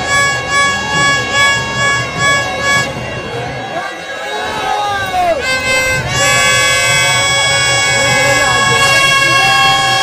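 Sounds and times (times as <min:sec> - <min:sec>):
crowd noise: 0:00.0 - 0:10.0
reedy wind instrument: 0:00.0 - 0:10.0.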